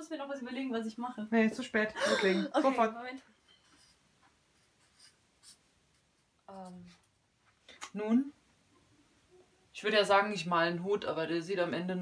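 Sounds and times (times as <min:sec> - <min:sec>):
marker drawing on paper: 0:04.6 - 0:07.0.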